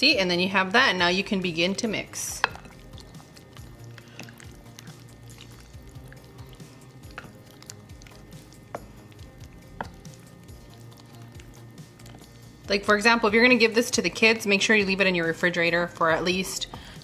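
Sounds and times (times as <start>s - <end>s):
spoon squishing thick mash: 1.0s - 17.0s
spoon knocking glass bowl: 2.4s - 2.7s.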